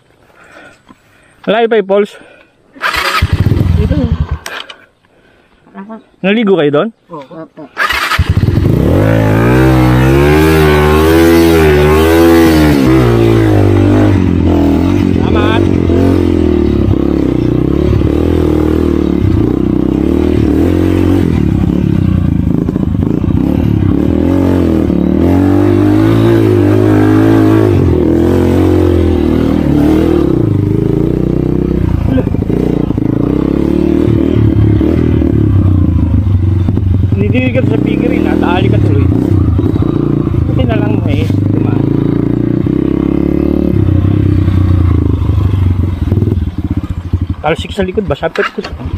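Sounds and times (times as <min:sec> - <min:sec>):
small motorcycle engine revving: 0:02.8 - 0:04.7, 0:07.7 - 0:48.9.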